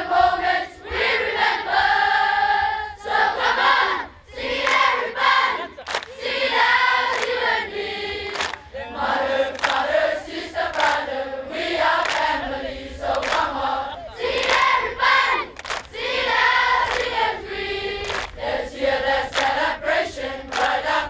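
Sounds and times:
boys singing in unison: 0:00.0 - 0:21.0
sharp claps or stamps: 0:05.9 - 0:06.1, 0:07.1 - 0:07.4, 0:08.3 - 0:08.6, 0:09.6 - 0:09.8, 0:10.7 - 0:11.0, 0:15.6 - 0:15.9, 0:18.0 - 0:18.4, 0:20.5 - 0:20.8.

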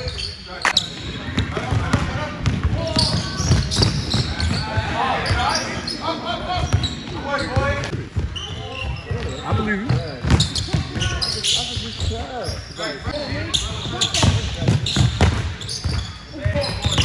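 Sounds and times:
people talking: 0:00.0 - 0:07.9, 0:08.5 - 0:15.1, 0:16.0 - 0:17.0
basketball bouncing on gym floor: 0:00.8 - 0:05.4, 0:09.1 - 0:12.3, 0:13.3 - 0:17.0.

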